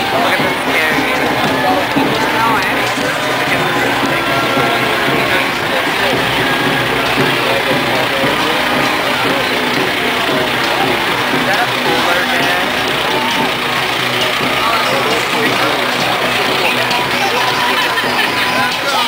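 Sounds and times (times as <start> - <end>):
crowd chatter: 0.0 - 19.0
truck engine running: 0.0 - 19.0.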